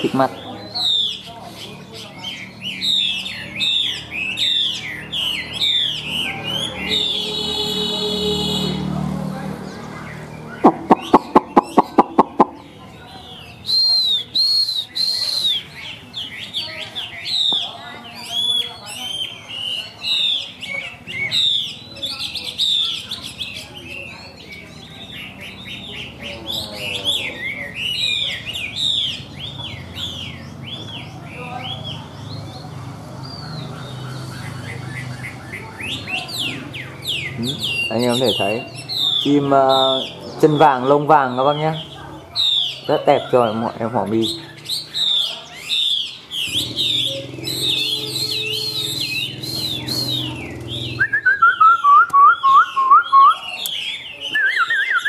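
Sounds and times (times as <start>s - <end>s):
bird singing whistled phrases: 0.3s - 1.3s, 2.2s - 8.8s, 10.4s - 32.0s, 34.4s - 55.0s.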